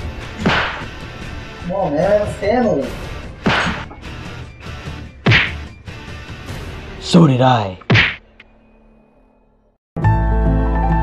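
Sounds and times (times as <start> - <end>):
punch landing on a person: 3.4 - 3.8, 5.3 - 5.6, 7.9 - 8.2.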